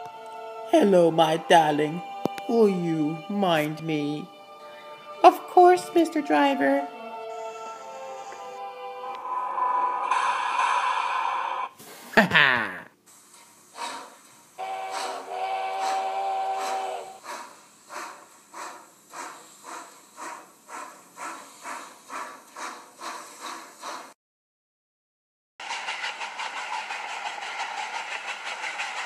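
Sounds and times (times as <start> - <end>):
steam locomotive chuffing: 5.1 - 11.8, 13.2 - 24.2, 25.6 - 29.0
steam hissing: 7.3 - 12.2, 13.1 - 24.2, 25.6 - 29.0
person laughing: 12.0 - 13.0
steam whistle: 14.6 - 17.2.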